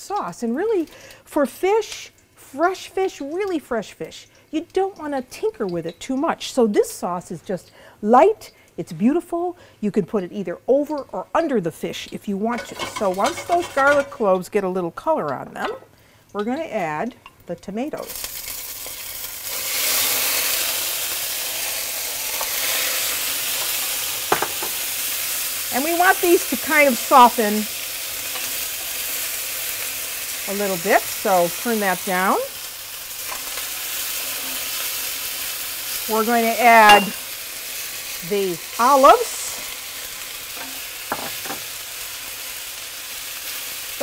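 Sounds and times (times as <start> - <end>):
tomatoes sizzling in oil: 0.0 - 44.0.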